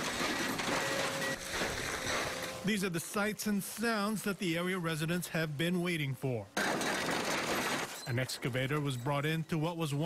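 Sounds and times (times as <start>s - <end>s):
timber cracking and crunching: 0.0s - 2.7s
excavator running: 0.0s - 3.1s.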